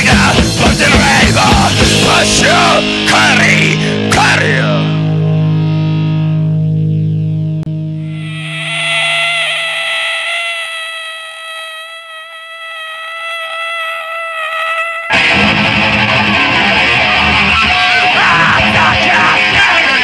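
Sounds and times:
heavy punk band playing: 0.0 - 5.8, 15.1 - 20.0
electric guitar feedback: 1.8 - 19.6.

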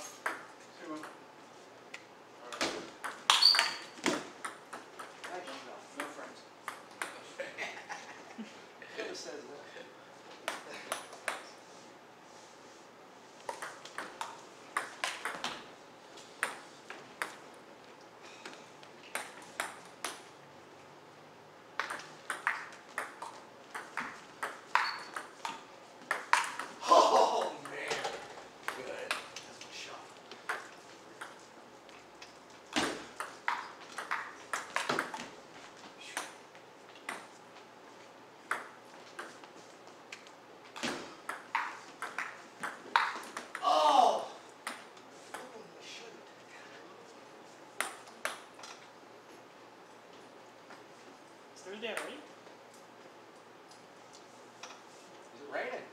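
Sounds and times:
table tennis ball hits: 0.2 - 1.2, 2.5 - 7.2, 10.4 - 11.5, 13.5 - 15.7, 16.4 - 16.6, 19.1 - 20.3, 21.8 - 26.8, 30.4 - 31.4, 32.7 - 35.3, 38.5 - 39.4, 40.8 - 43.8, 44.6 - 45.5.

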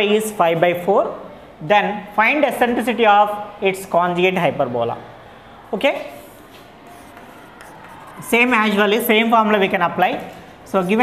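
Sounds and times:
chalk scratching on chalkboard: 6.2 - 8.3.

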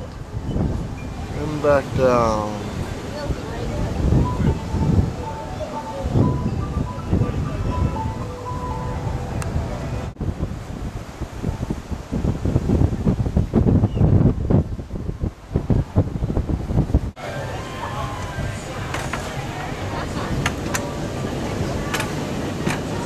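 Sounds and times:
rush of the sea: 0.0 - 23.0
wind buffeting microphone: 0.0 - 23.0.

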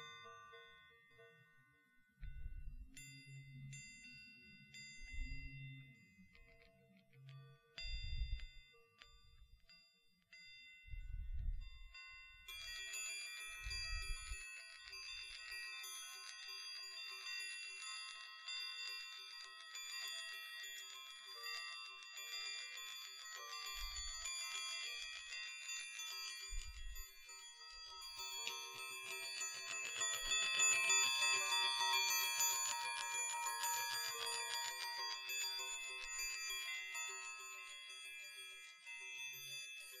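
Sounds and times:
chime balls ringing: 0.0 - 40.0.

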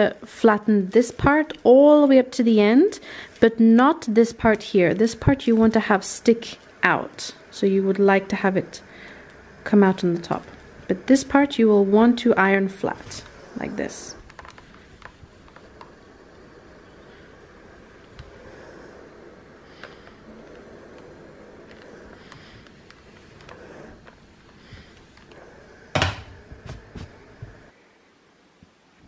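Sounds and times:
iron sliding over fabric: 0.0 - 27.8.

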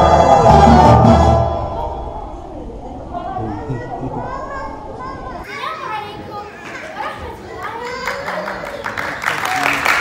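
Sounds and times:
children talking in a hall: 1.7 - 10.0.

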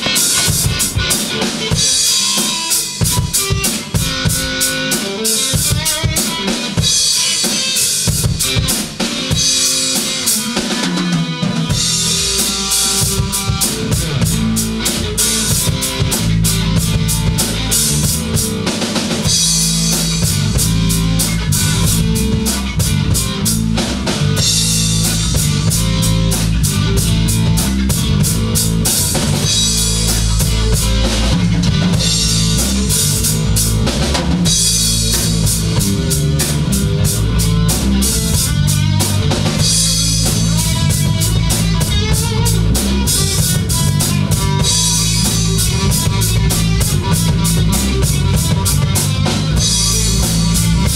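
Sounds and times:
bass guitar line: 0.0 - 50.9
drum kit steady beat: 0.0 - 50.9.

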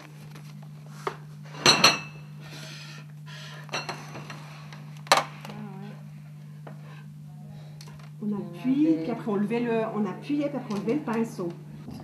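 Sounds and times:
book pages turning: 0.0 - 1.2
steady low hum: 0.0 - 12.0.

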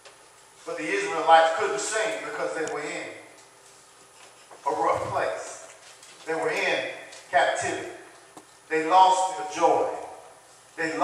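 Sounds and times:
man preaching into a microphone: 0.6 - 3.4, 4.6 - 8.1, 8.7 - 11.0.

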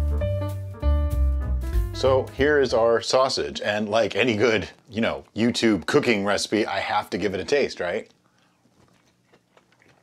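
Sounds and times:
faint chewing: 7.2 - 10.0.

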